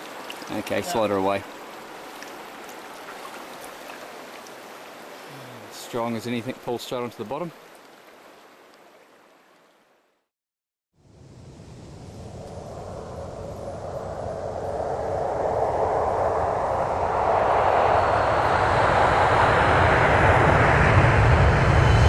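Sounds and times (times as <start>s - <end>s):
rushing rumbling noise: 11.1s - 22.0s.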